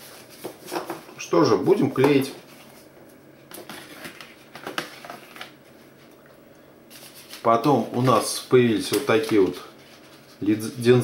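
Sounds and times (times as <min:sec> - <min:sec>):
cardboard and plastic taps and rustles: 0:03.5 - 0:05.6.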